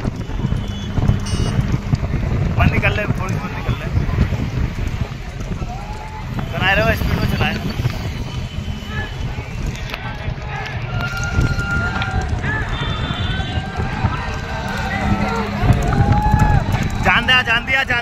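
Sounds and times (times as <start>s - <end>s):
motorcycle engines running: 0.0s - 18.0s
men shouting: 10.3s - 18.0s.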